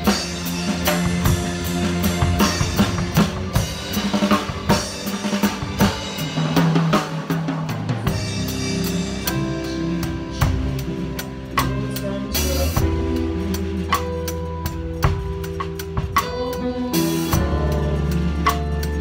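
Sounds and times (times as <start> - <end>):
drum kit played with sticks: 0.0 - 19.0.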